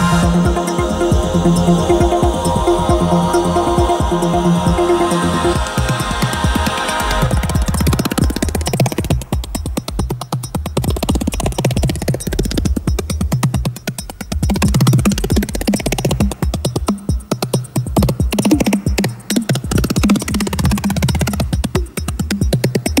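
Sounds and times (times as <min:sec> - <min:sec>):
electronic synthesizer music: 0:00.0 - 0:23.0.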